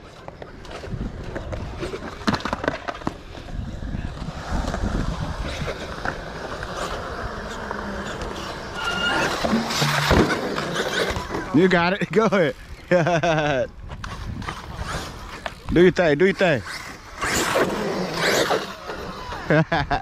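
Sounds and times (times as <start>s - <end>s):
wheels rolling on concrete: 0.0s - 20.0s
brief high tone: 8.8s - 10.2s.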